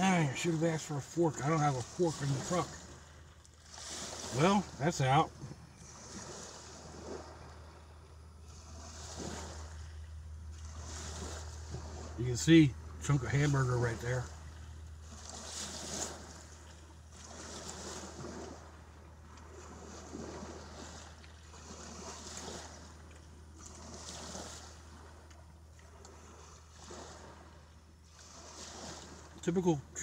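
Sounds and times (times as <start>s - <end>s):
small waves washing against bank: 0.0s - 30.0s
steady low hum: 0.0s - 30.0s.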